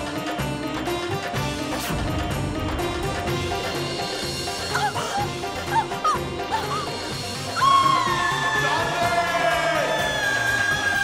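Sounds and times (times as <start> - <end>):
dramatic background score: 0.0 - 11.0.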